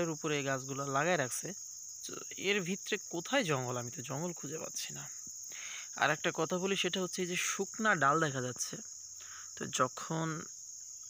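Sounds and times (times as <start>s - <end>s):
man talking: 0.0s - 5.2s, 5.9s - 8.8s, 9.6s - 10.5s
insects chirring: 0.0s - 11.0s.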